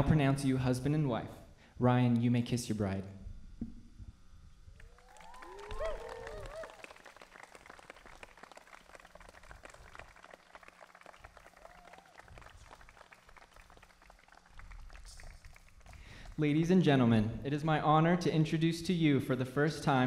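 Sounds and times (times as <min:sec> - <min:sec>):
whoops: 0:04.8 - 0:07.2, 0:11.3 - 0:12.5
people clapping and cheering: 0:04.8 - 0:16.5.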